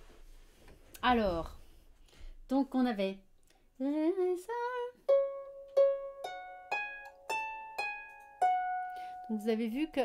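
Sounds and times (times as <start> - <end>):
harp plucked notes: 5.0 - 9.9.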